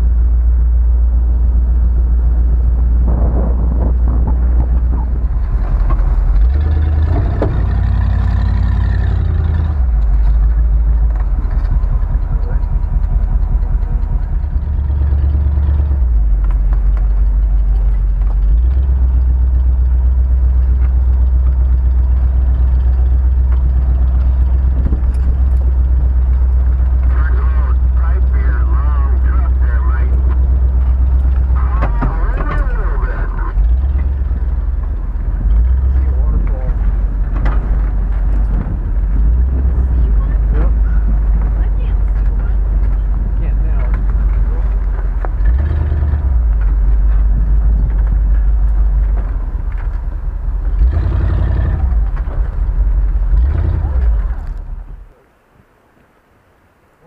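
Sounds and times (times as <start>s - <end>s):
truck engine driving on dirt: 0.0s - 55.3s
muffled voices: 12.2s - 12.9s, 26.9s - 30.5s, 31.3s - 34.2s, 35.7s - 37.2s, 39.7s - 45.1s.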